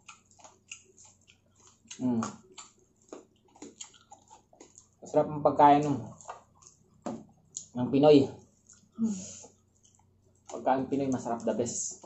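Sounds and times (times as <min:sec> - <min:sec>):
chewing mouth clicks and smacks: 0:00.0 - 0:05.2, 0:06.0 - 0:07.8, 0:08.4 - 0:10.6.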